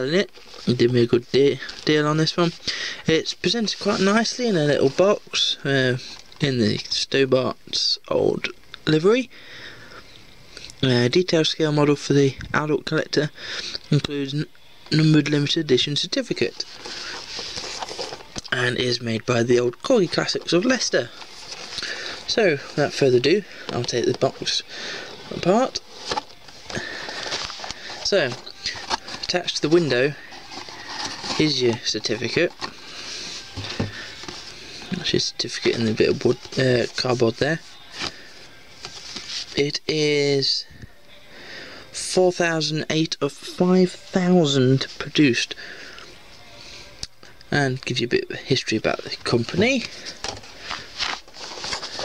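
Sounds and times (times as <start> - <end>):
cardboard rustling and scraping: 3.5 - 5.0, 16.2 - 18.7, 19.8 - 39.6, 48.9 - 52.0.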